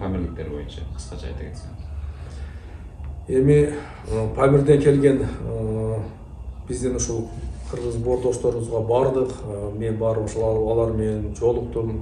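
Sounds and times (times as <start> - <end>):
man speaking: 0.0 - 1.8, 3.2 - 12.0.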